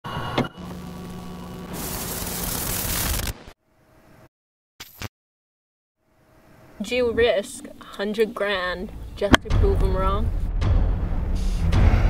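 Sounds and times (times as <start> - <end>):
loud tape static: 0.6 - 3.6.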